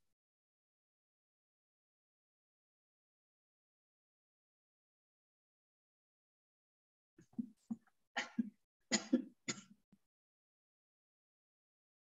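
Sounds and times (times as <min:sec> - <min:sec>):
person coughing: 0:08.2 - 0:09.7.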